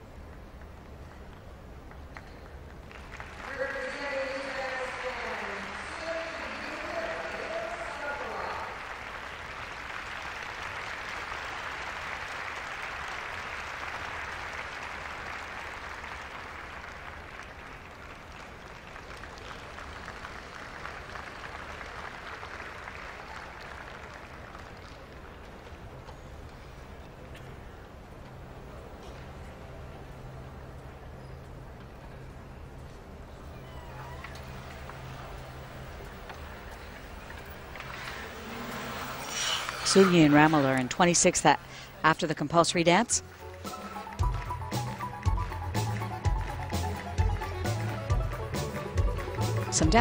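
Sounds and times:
crowd applauding: 0:00.3 - 0:27.4, 0:33.4 - 0:50.0.

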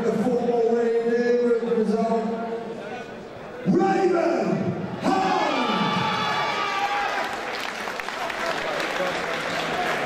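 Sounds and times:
crowd cheering and applauding: 0:05.5 - 0:10.0.

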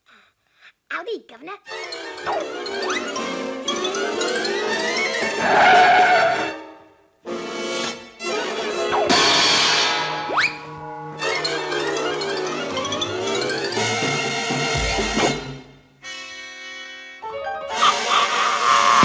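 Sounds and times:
orchestral cartoon music: 0:01.7 - 0:19.0
rising whistle-like glide: 0:17.8 - 0:19.0.

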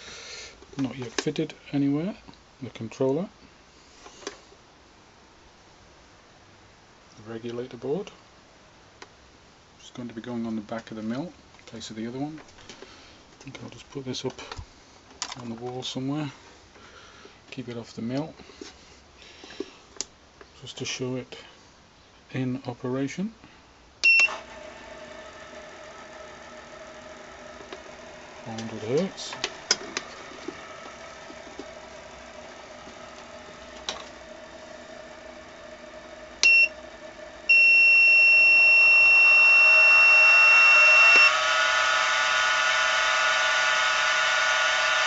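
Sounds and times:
faint steady hiss: 0:00.0 - 0:34.3
two-tone beep: 0:24.0 - 0:24.4, 0:36.4 - 0:36.7, 0:37.5 - 0:40.2
spindle motor humming: 0:24.2 - 0:45.0.

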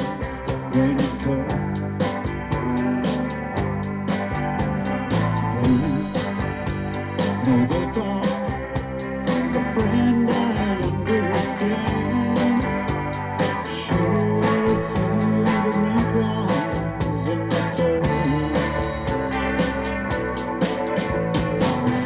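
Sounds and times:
country band playing: 0:00.0 - 0:22.0
electric guitar: 0:00.0 - 0:22.0.

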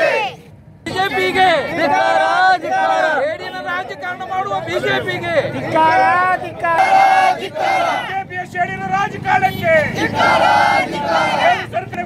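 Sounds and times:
crowd of men shouting slogans: 0:00.0 - 0:12.0.

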